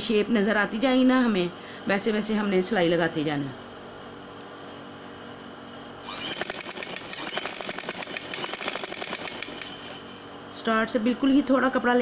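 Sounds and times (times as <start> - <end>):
sewing machine stitching: 6.0 - 10.1.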